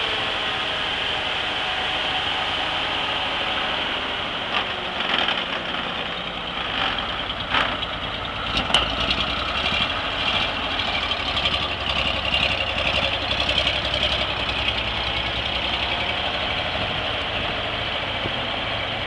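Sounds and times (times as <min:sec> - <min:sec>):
truck engine running: 0:00.0 - 0:19.0.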